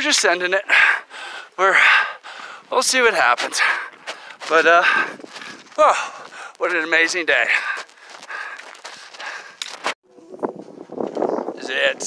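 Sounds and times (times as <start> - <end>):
footsteps on a trail: 2.2 - 11.5
sharp crunches: 7.7 - 10.0.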